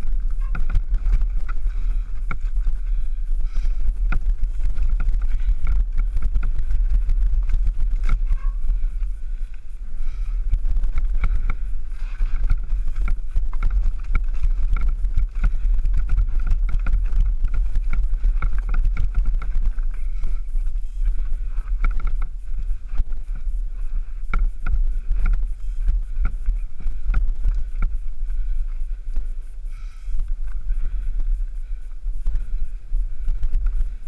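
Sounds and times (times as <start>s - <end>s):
bike rattling over stones: 0.0s - 34.0s
faint high whir: 0.0s - 34.0s
wind rumbling on microphone: 0.0s - 34.0s.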